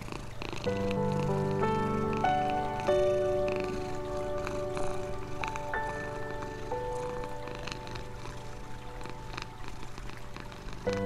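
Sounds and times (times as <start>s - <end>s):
calm music: 0.0s - 11.0s
cat purring: 0.0s - 11.0s.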